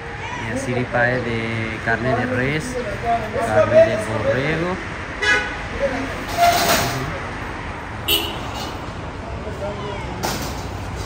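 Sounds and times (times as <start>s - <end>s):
street traffic: 0.0s - 11.0s
vehicle horn toots: 5.2s - 5.6s, 8.0s - 8.8s.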